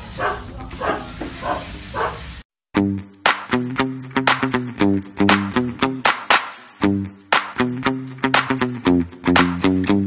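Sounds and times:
dog barking: 0:00.1 - 0:02.3.

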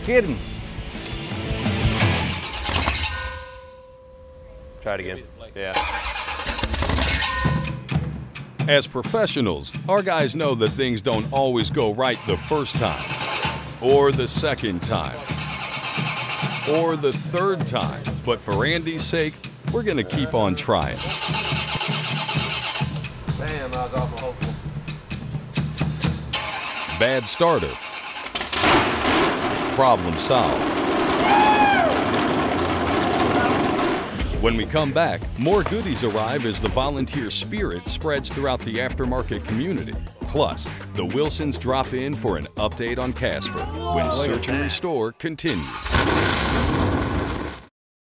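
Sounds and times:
engine starter cranking: 0:02.0 - 0:03.3, 0:05.7 - 0:07.8, 0:12.1 - 0:13.9, 0:15.0 - 0:17.1, 0:20.9 - 0:24.2, 0:26.0 - 0:31.2, 0:45.5 - 0:47.6.

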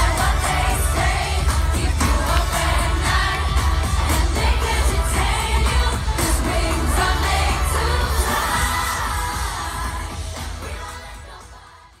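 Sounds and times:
female vocal group singing: 0:00.0 - 0:12.0.

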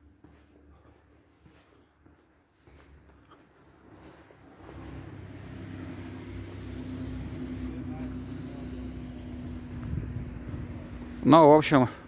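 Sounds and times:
engine humming: 0:03.7 - 0:12.0.

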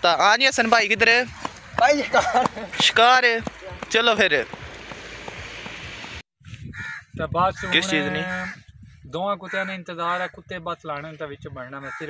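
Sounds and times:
steady outdoor hiss: 0:00.0 - 0:06.2
man's loud drawn-out voice: 0:07.2 - 0:08.6.

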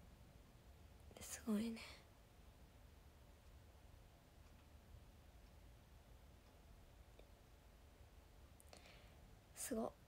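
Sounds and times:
young woman speaking softly: 0:01.1 - 0:02.1, 0:09.6 - 0:10.0.

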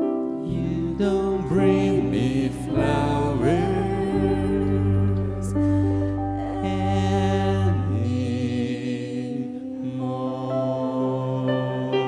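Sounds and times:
piano: 0:00.0 - 0:12.0
cello: 0:00.4 - 0:12.0
deep bass notes: 0:00.5 - 0:08.8
woman singing ballad: 0:00.9 - 0:08.3.

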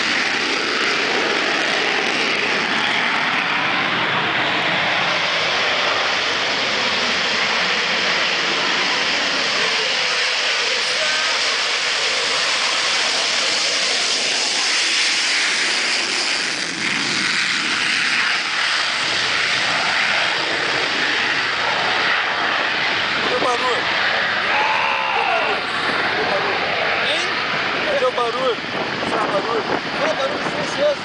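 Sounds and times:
jet engine roar: 0:00.0 - 0:31.0.

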